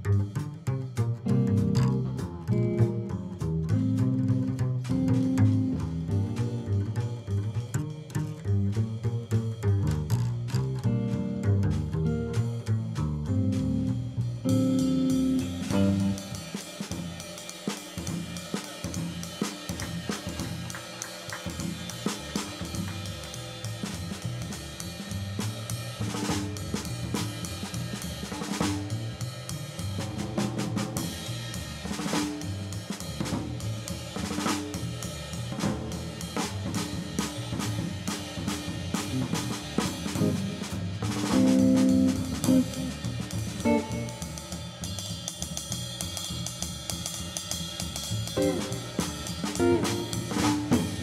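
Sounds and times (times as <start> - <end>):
drum kit beat: 0.0 - 51.0
upright double bass: 0.0 - 51.0
electric guitar chords: 14.5 - 16.2, 43.6 - 44.4, 48.4 - 49.0, 49.6 - 51.0.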